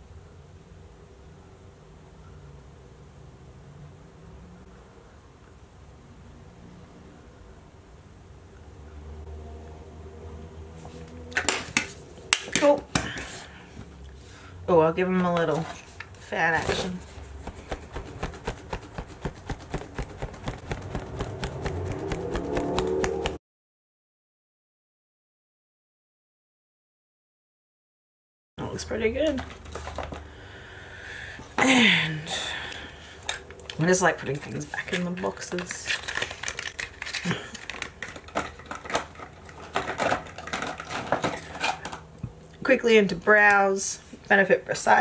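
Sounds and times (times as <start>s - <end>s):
hand fan flapping: 15.4s - 23.4s.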